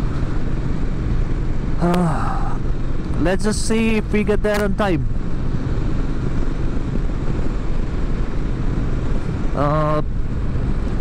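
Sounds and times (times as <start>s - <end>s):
motorcycle engine: 0.0s - 11.0s.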